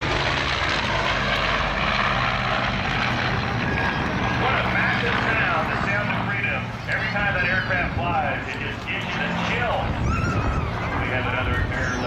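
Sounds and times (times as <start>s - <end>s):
airplane engine drone: 0.0s - 12.0s.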